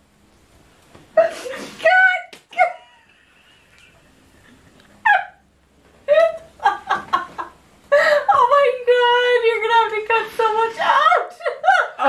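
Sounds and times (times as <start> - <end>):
women laughing with squeals: 1.2 - 5.4, 6.1 - 8.4, 10.9 - 12.0.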